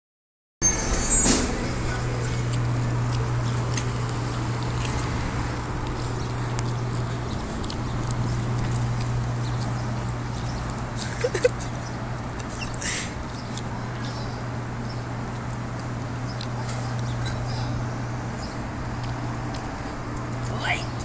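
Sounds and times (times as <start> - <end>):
outdoor street noise: 0.6 - 21.0
steady low hum: 0.6 - 21.0.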